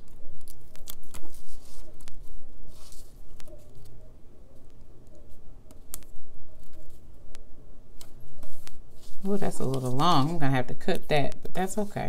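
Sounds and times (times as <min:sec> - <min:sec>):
paper rustling: 0:00.3 - 0:04.0, 0:08.0 - 0:10.4.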